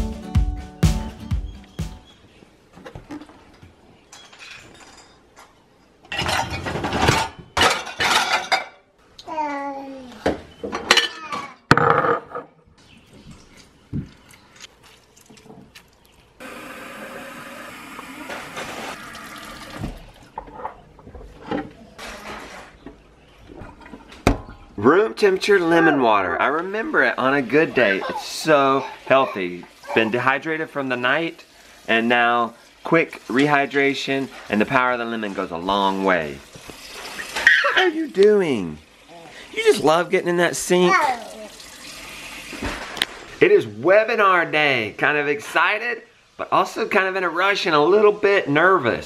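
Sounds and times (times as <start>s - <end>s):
glassware clinking on counter: 6.1s - 8.8s.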